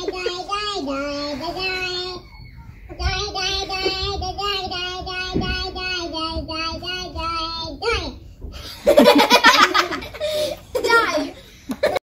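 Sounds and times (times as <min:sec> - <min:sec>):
child singing: 0:00.0 - 0:08.2.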